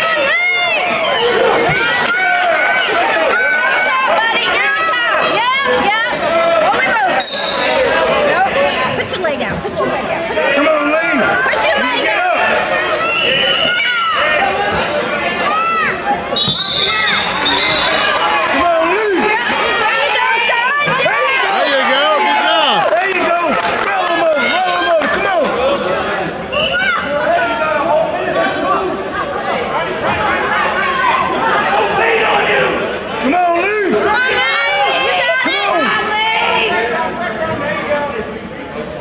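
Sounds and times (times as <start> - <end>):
voices shouting: 10.4 - 37.6.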